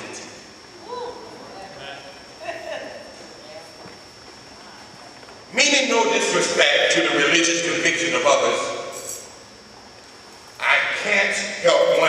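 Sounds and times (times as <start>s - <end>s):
faint murmurs: 0.6s - 5.6s.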